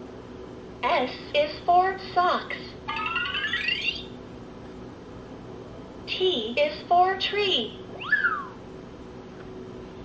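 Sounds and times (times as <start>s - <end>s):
toy voice speaking: 2.9s - 4.1s
electronic toy jingle: 2.9s - 4.2s.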